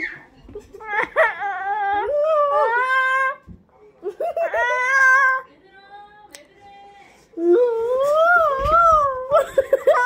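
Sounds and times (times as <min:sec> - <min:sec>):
child wailing and whining: 0:00.0 - 0:03.5.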